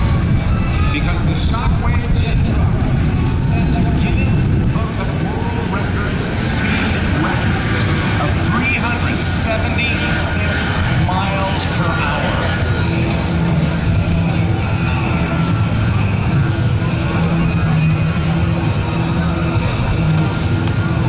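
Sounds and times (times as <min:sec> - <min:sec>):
jet engines roaring: 0:00.0 - 0:21.0.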